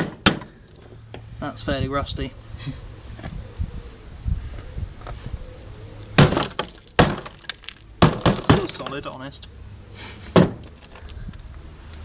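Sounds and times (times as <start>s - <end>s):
rusted metal cracking and knocking: 0.0s - 0.6s, 6.2s - 9.3s.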